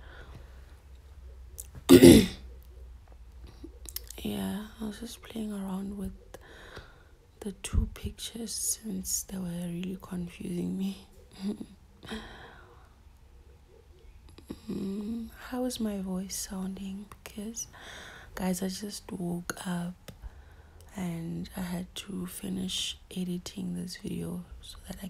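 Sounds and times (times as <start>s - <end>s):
woman clearing her throat: 1.9s - 2.4s.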